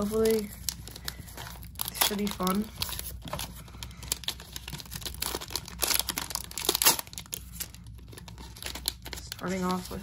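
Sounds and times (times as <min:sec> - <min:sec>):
plastic wrapper crinkling and tearing: 0:00.0 - 0:10.0.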